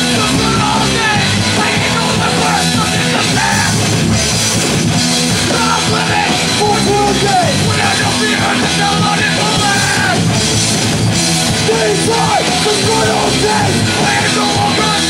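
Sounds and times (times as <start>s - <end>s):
vocals into a microphone: 0.0s - 4.0s, 5.3s - 10.3s, 11.5s - 15.0s
drum kit: 0.0s - 15.0s
electric guitars: 0.0s - 15.0s.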